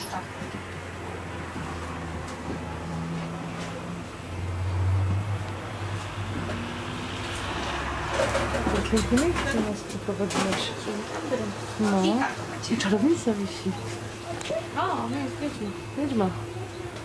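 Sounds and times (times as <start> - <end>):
vehicle engine rumble: 0.0 - 17.0.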